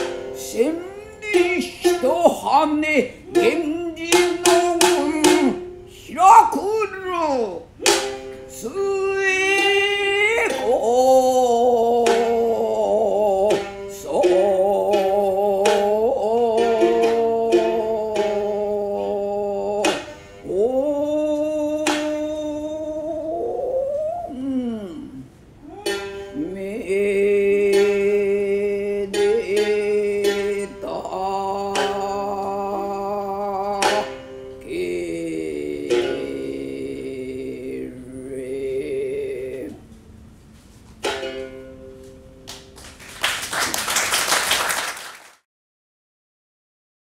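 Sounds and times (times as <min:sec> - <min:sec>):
woman chanting: 0:00.0 - 0:07.7, 0:08.5 - 0:39.8
shamisen stroke: 0:00.0 - 0:43.0
shamisen note ringing: 0:07.8 - 0:08.7, 0:25.7 - 0:26.6, 0:41.0 - 0:42.5
audience applause: 0:42.8 - 0:45.4.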